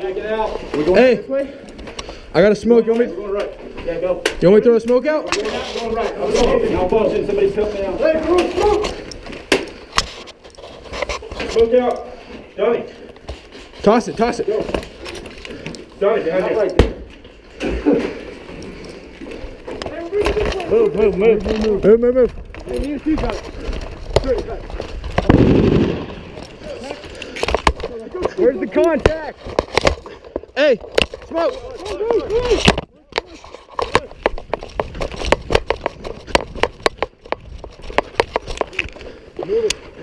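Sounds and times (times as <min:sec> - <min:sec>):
footsteps: 0:00.0 - 0:40.0
rifle shots: 0:25.2 - 0:26.4
rattle of gear: 0:29.2 - 0:39.1.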